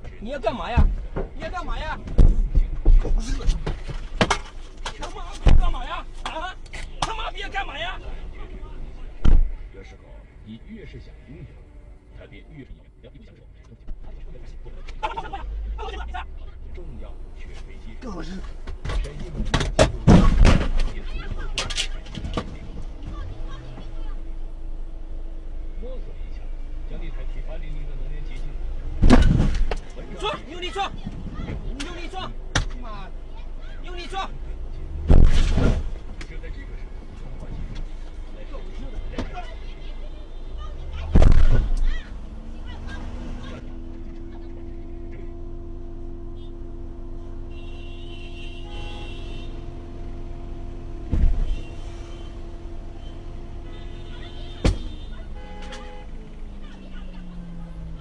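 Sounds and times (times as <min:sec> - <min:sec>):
car rumbling on road: 0:00.0 - 0:58.0
voices: 0:00.0 - 0:58.0
heavy thump: 0:18.5 - 0:21.1, 0:29.0 - 0:29.9, 0:35.0 - 0:36.4, 0:41.0 - 0:41.9, 0:51.0 - 0:51.9, 0:54.6 - 0:55.0.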